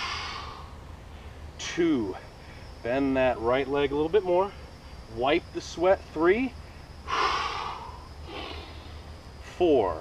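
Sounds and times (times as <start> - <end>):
man breathing hard: 0.0 - 1.4, 6.7 - 9.1.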